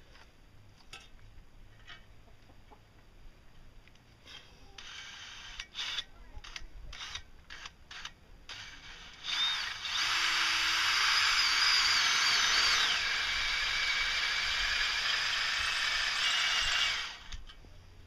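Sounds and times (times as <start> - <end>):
drill clicks: 4.3 - 17.6
drill squealing through steel: 7.0 - 17.4.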